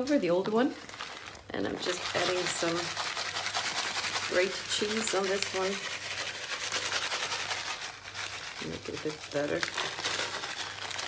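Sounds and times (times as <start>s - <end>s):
plastic bag crinkling: 0.3s - 11.0s.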